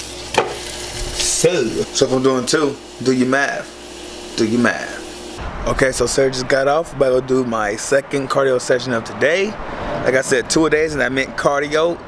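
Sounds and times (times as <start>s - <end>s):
sausages sizzling on a grill: 0.0s - 5.4s.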